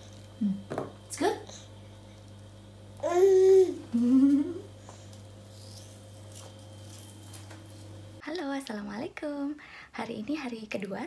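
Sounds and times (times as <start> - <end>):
toddler humming: 3.0 - 4.7.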